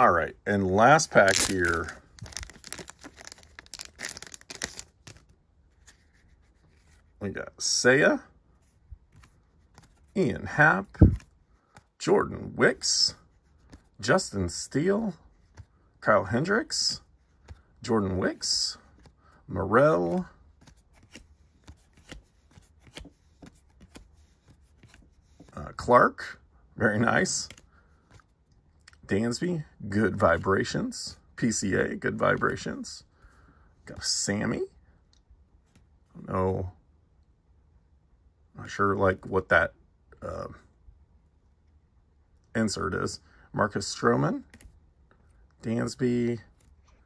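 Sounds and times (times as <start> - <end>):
trading cards being flipped: 1.0 - 7.1, 9.0 - 10.1, 20.0 - 25.5
wrapper crackling as torn open: 1.2 - 5.2.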